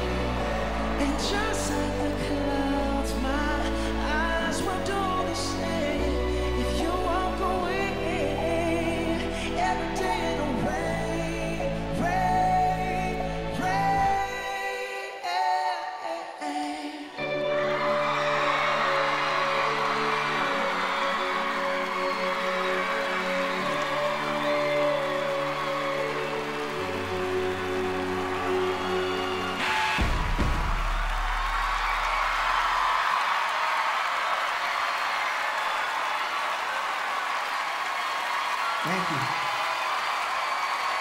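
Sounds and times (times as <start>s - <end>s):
audience cheering and applauding: 0.0s - 14.4s, 17.2s - 41.0s.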